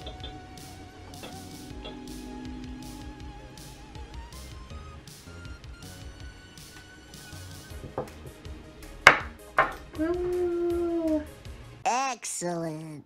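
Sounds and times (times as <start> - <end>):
light background music: 0.0 - 11.8.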